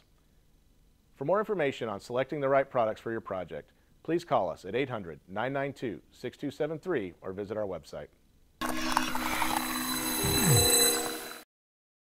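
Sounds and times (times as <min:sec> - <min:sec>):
synthesized audio logo sting: 0:08.6 - 0:11.4.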